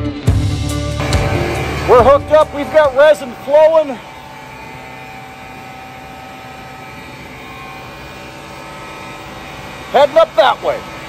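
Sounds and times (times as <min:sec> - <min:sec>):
blower mechanical drone: 0:00.0 - 0:11.0.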